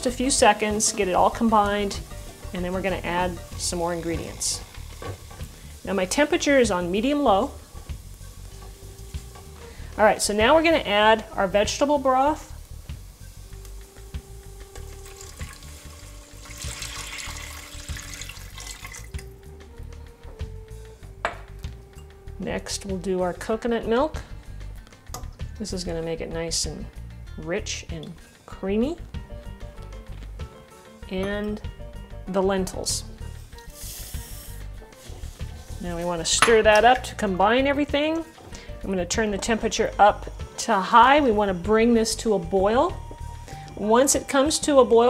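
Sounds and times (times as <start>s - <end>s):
quiet background music: 0.0s - 45.0s
liquid pouring into a pot: 15.0s - 19.2s
soft hiss: 33.2s - 37.1s.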